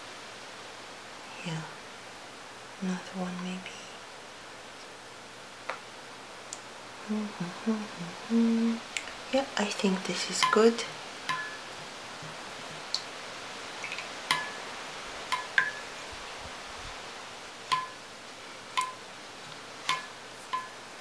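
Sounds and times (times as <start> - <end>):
brush tapping against glass: 10.3 - 12.4, 13.8 - 14.6, 15.3 - 15.9, 17.7 - 18.0, 18.8 - 19.0, 19.8 - 20.8.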